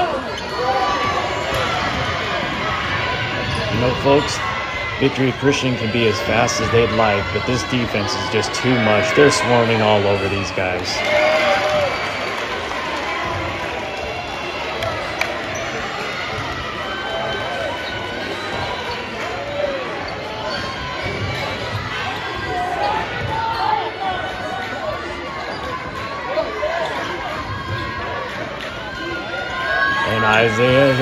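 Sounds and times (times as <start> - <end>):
spectators voices and shouts: 0.0 - 31.0.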